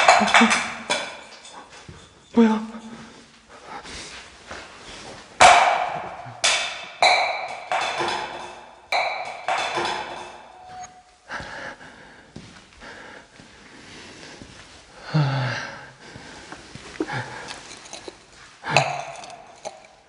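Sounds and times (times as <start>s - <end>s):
sharp knocks with ringing: 5.4s - 11.0s.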